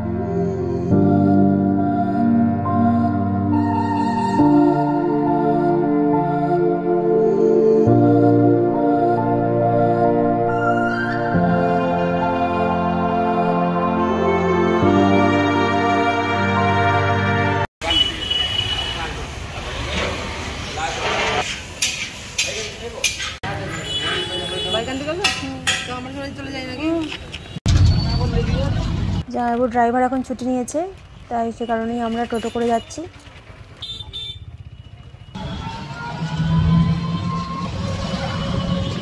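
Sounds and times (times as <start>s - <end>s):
street voices: 17.8s - 39.0s
rickshaw ride rumble: 18.1s - 39.0s.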